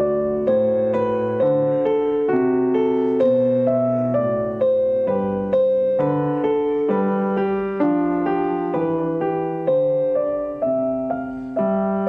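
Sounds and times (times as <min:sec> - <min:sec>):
slow solo piano: 0:00.0 - 0:12.0.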